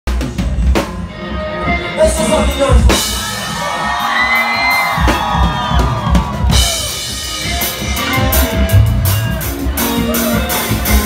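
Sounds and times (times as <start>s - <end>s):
live band playing amplified music: 0.1s - 11.0s
crowd whooping: 2.9s - 11.0s.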